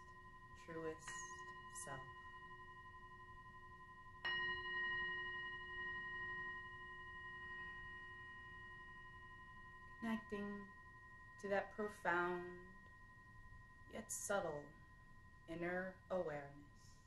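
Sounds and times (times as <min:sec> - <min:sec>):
singing bowl ringing: 0:00.0 - 0:17.0.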